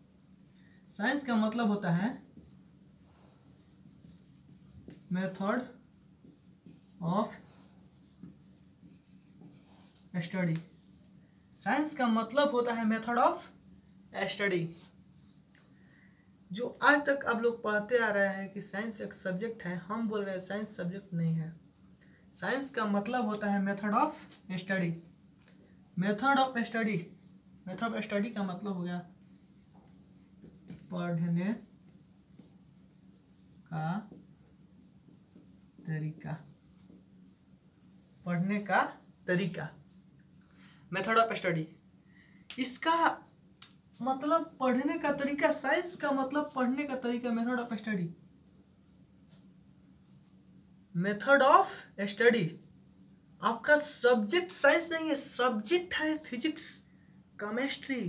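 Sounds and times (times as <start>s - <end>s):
marker pen writing on whiteboard: 1.1s - 11.2s, 27.2s - 40.0s.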